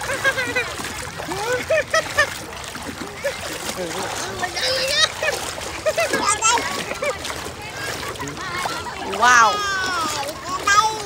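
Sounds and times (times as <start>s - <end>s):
voices: 0.0s - 11.0s
water splashing: 0.0s - 11.0s.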